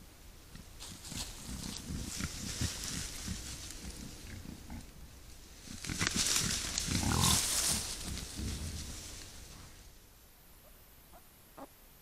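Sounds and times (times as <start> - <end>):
rustle of dry grass: 0.0 - 10.1
wild boar grunting: 0.5 - 9.8.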